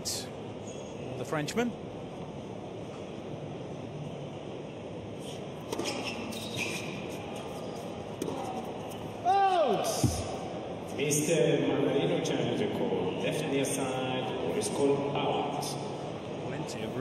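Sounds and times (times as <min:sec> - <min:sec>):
steady hall hum: 0:00.0 - 0:17.0
racket hitting tennis ball: 0:05.6 - 0:08.7
person shouting out: 0:09.2 - 0:10.0.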